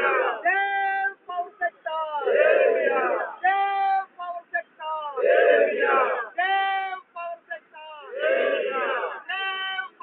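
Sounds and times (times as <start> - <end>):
protesters chanting in unison: 0.0 - 10.0.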